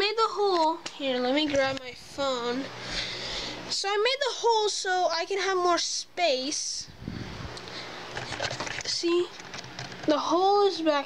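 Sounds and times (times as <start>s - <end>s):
phone handling rustling: 8.1s - 10.2s.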